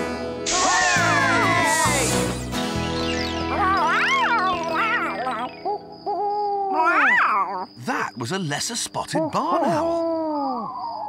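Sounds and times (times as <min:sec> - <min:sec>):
soft background music: 0:00.0 - 0:09.0
cartoon owl hooting: 0:00.5 - 0:02.1, 0:03.4 - 0:07.8, 0:09.1 - 0:11.0.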